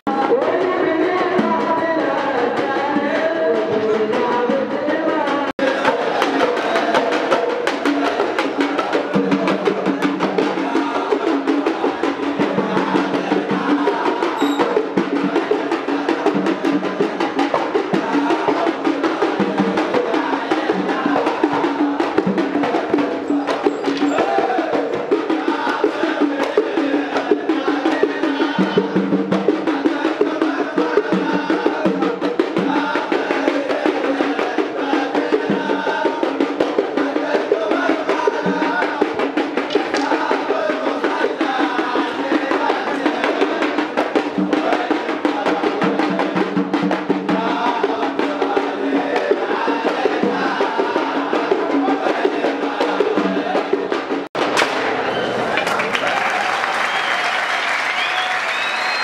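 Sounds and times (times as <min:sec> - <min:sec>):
double-headed drum beating: 0:00.1 - 0:54.5
applause: 0:54.7 - 0:59.0.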